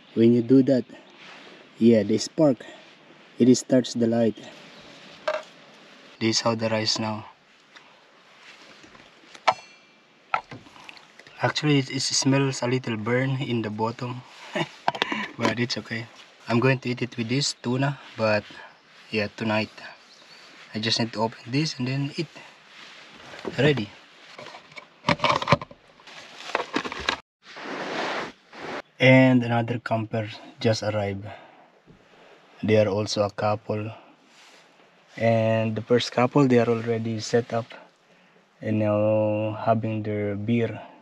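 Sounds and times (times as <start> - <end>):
steady hiss: 0.0 - 8.7, 10.6 - 24.4, 32.0 - 39.8.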